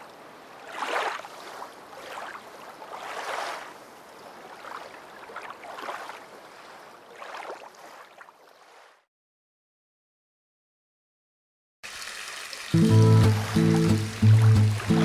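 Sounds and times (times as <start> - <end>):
splashing water: 0.6 - 9.0, 11.8 - 15.0.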